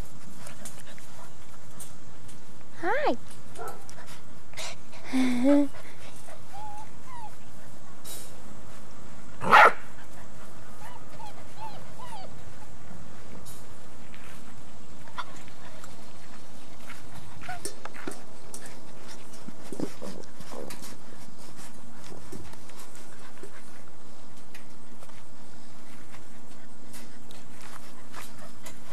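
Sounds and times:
puppies whimpering: 5.6s - 7.6s, 10.8s - 12.7s
puppy barking: 9.4s - 9.8s.

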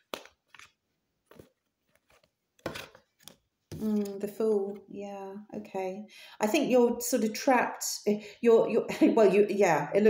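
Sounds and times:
cards shuffling: 0.0s - 4.8s.

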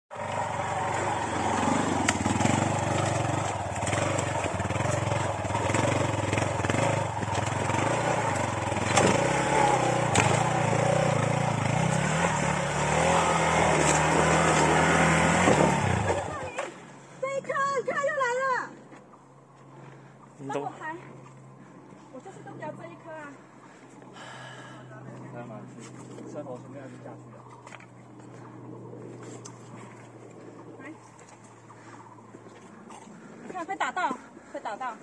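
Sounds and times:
motorcycle engine revving: 0.1s - 16.9s.

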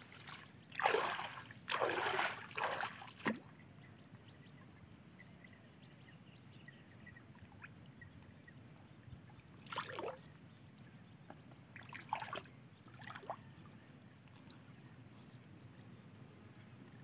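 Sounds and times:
hands splashing in muddy water: 0.1s - 3.5s.

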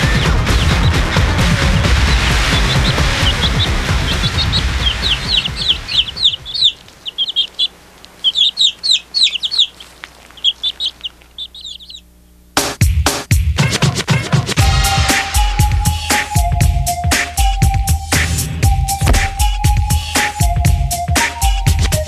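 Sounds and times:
loud music: 0.0s - 6.7s, 12.6s - 22.0s
small birds chirping: 0.0s - 12.6s, 14.5s - 22.0s.

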